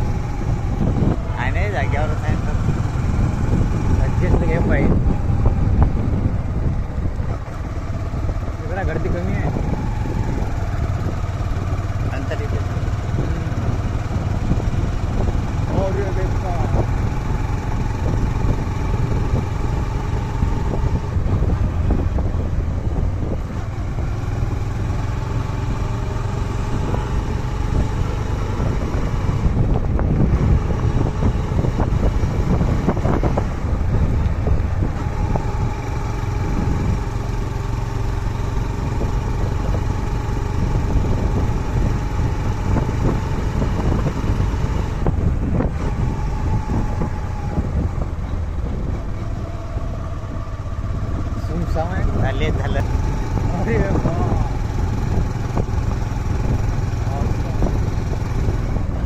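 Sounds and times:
small motorcycle engine running: 0.0s - 59.0s
wind buffeting microphone: 0.0s - 59.0s.

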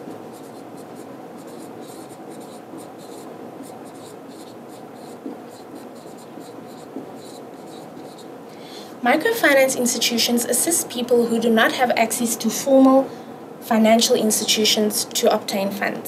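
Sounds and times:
writing tool scratching: 0.3s - 8.3s.

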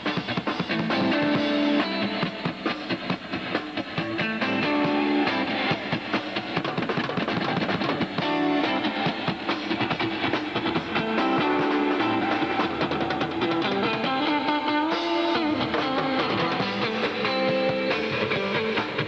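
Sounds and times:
drum kit beat: 0.0s - 19.0s
electric guitar notes: 4.0s - 6.2s, 8.1s - 19.0s.

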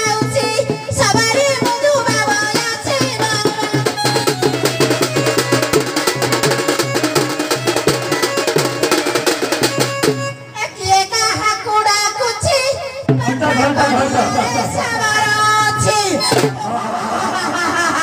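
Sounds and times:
fast hand-drumming: 0.0s - 10.4s, 16.2s - 16.8s.

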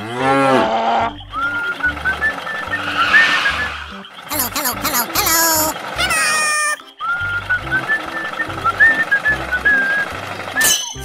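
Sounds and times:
whistled melody with bass beat: 0.9s - 4.1s, 6.8s - 11.0s
cartoon sliding sound effects: 2.9s - 6.8s.

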